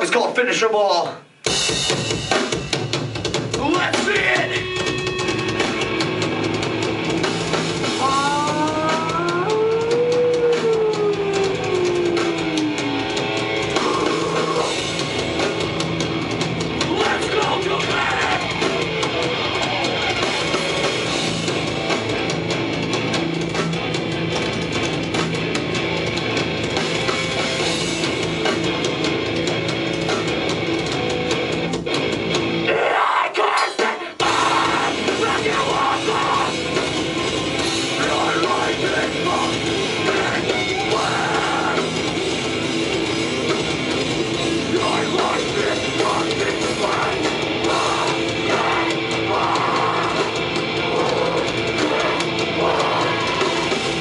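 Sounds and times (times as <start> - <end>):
hardcore band playing live: 0.0 - 54.0.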